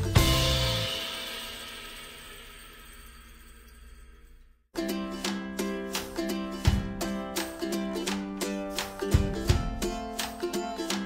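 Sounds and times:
plucked string tune: 0:00.0 - 0:01.8, 0:04.8 - 0:11.0
music chord ringing out: 0:00.0 - 0:02.6.

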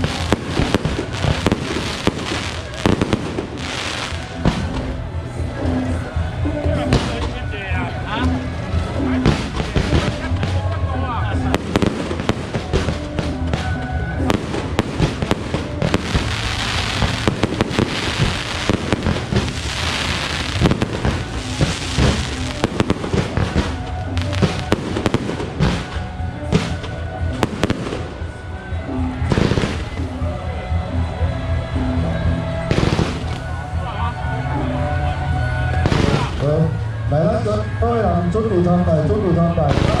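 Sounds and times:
fireworks launching and banging: 0:00.0 - 0:05.1, 0:06.8 - 0:07.5, 0:08.8 - 0:10.8, 0:11.4 - 0:28.4, 0:29.2 - 0:30.1, 0:32.7 - 0:33.6, 0:35.8 - 0:36.5, 0:39.6 - 0:40.0.

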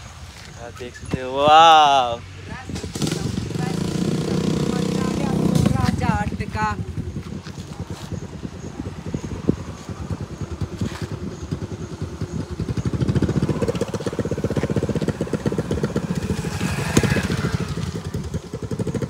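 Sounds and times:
engine running with low beat: 0:02.7 - 0:19.0.

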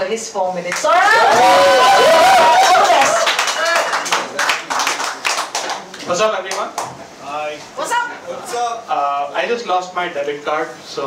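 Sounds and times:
audience clapping: 0:00.7 - 0:07.0.

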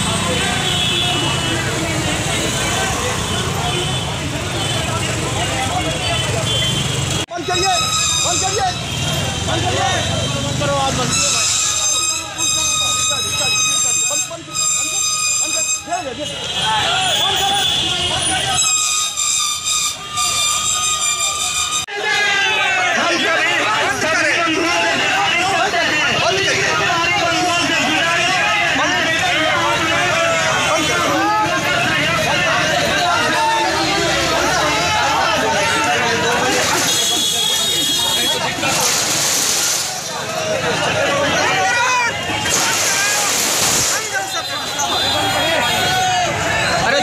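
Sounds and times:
traffic rumble: 0:00.0 - 0:13.3, 0:22.3 - 0:47.0
people talking: 0:00.0 - 0:47.0
street noise: 0:00.0 - 0:47.0.

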